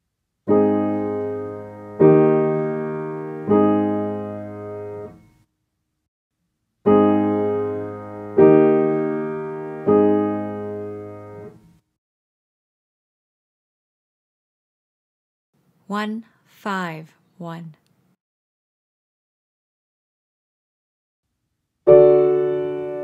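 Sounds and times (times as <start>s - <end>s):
piano chords: 0.5s - 5.3s, 6.8s - 11.7s, 21.9s - 23.0s.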